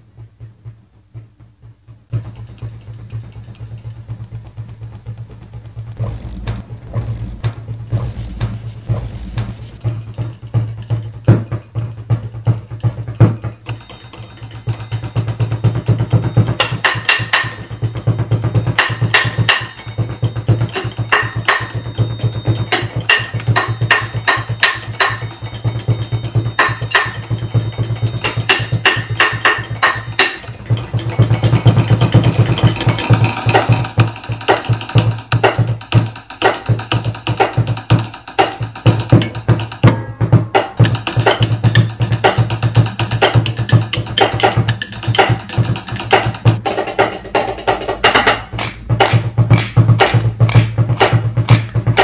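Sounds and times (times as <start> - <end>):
percussion ensemble low beat: 2.1 - 10.4, 13.0 - 52.0
steady low tone: 3.4 - 10.6, 13.7 - 33.6.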